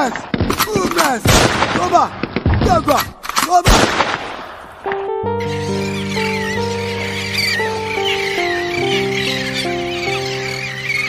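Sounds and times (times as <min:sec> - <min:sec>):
sustained keyboard chords: 0:04.8 - 0:11.0
high warbling chirps: 0:05.4 - 0:11.0.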